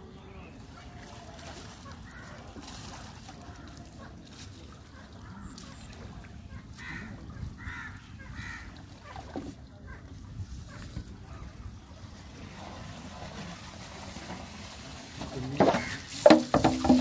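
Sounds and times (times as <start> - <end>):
low rumble of wind and water: 0.0 - 17.0
crows cawing: 6.8 - 8.8, 15.8 - 16.0.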